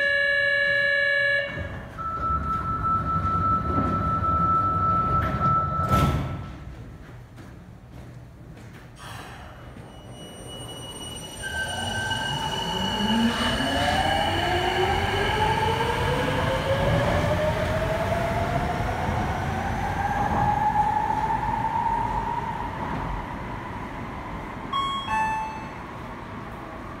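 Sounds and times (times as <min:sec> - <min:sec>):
chime of short high notes: 0:24.8 - 0:25.8.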